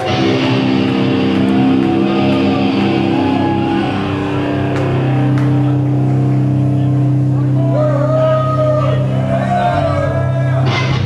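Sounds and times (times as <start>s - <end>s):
distorted guitars and bass drone: 0.0s - 11.0s.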